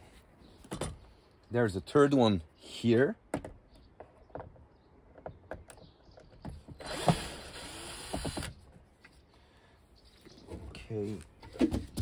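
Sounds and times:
cordless drill motor: 6.8 - 8.6.

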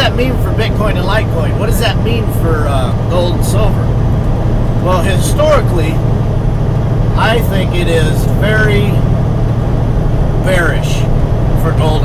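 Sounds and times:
diesel engine rumble: 0.0 - 12.0.

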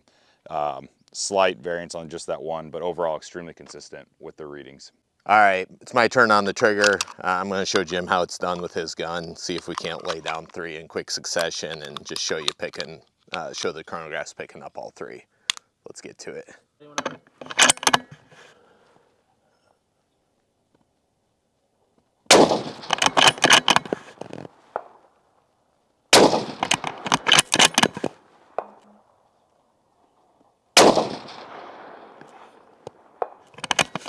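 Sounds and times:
rifle shots with echo: 22.3 - 25.1, 26.1 - 29.2, 30.8 - 33.5.

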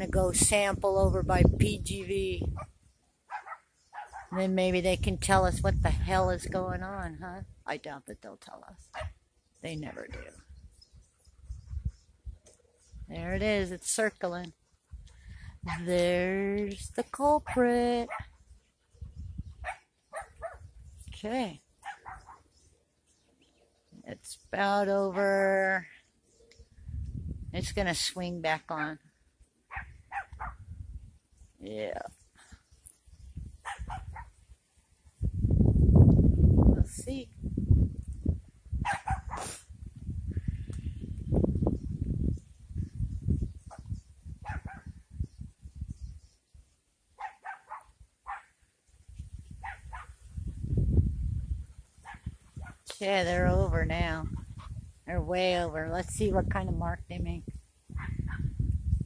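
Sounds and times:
wind rumble on microphone: 0.0 - 7.8, 8.7 - 23.3, 26.6 - 28.4, 29.7 - 46.8, 47.9 - 59.0
dog barking: 3.3 - 4.4, 9.0 - 9.2, 18.1 - 18.3, 19.6 - 20.6, 21.8 - 22.4, 29.7 - 30.6, 33.6 - 34.4, 38.8 - 39.4, 44.4 - 44.9, 47.2 - 48.5, 49.6 - 50.1.

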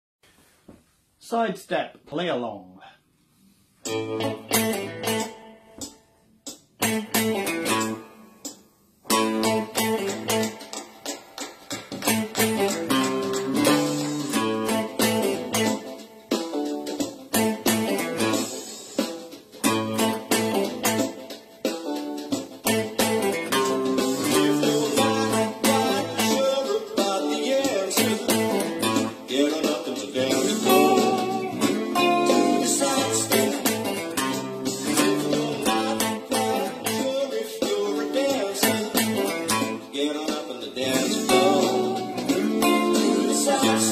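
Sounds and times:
electric guitar chord stabs: 3.9 - 5.8, 9.1 - 10.8, 12.0 - 39.9, 40.8 - 43.9
funk band backing track: 6.5 - 8.0, 9.1 - 43.9.

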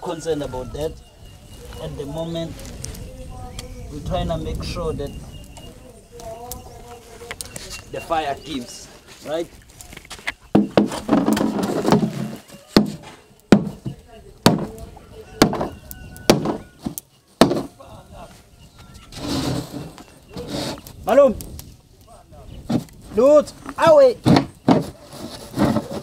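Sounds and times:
machete chopping: 14.5 - 14.8.

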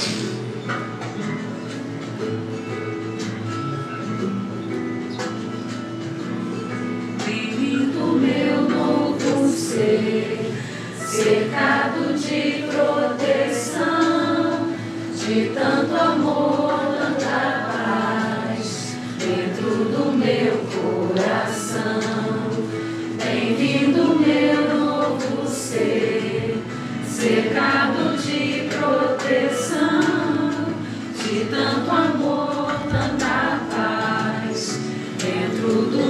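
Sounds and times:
choir singing: 7.2 - 36.0.

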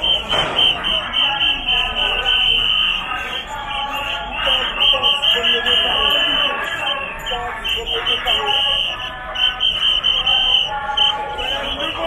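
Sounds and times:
crowd voices: 0.0 - 12.0
shrill whistles blowing: 0.0 - 12.0.

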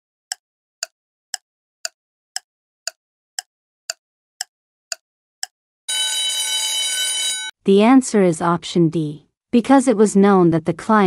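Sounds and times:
timer tick: 0.3 - 5.6
ringing alarm tone: 5.9 - 7.5.

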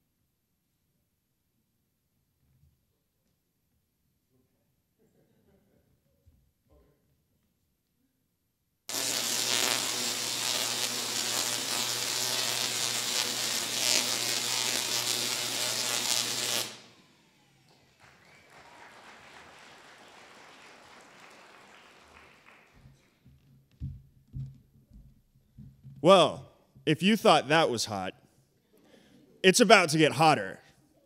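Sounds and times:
tesla coil electric buzz: 8.9 - 17.1.

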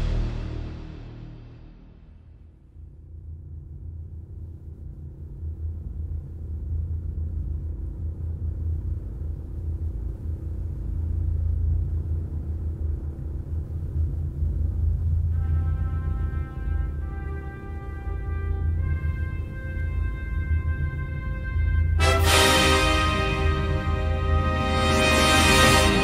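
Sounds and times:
deep steady rumble: 0.0 - 26.0.

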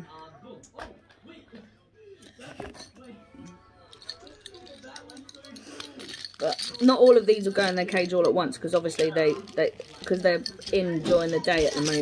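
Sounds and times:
faint background voices: 0.0 - 12.0
plastic bag crinkling: 4.0 - 12.0.

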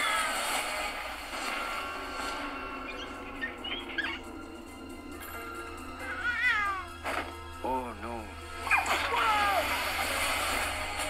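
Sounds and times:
background music: 0.0 - 11.0
cat-like cries: 6.0 - 7.0.

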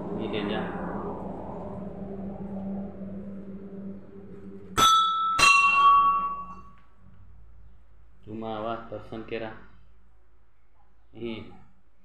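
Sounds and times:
steady low hum: 0.0 - 12.0
metal temple bell ringing: 4.8 - 6.7.

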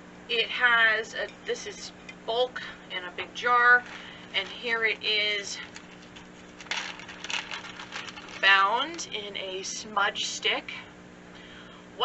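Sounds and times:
dry crinkly rustling of sage stick: 3.5 - 9.4.

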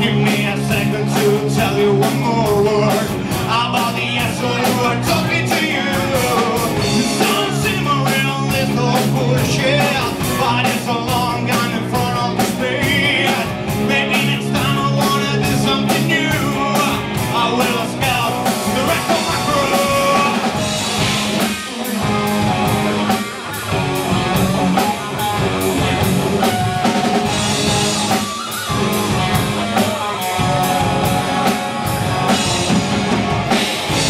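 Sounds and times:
bass guitar: 0.0 - 34.0
drum and cymbal hits: 0.0 - 34.0
electric guitars: 0.0 - 34.0.

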